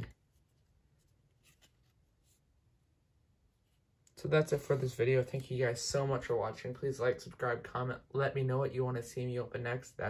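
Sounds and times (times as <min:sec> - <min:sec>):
card handled by hand: 0:00.0 - 0:02.4.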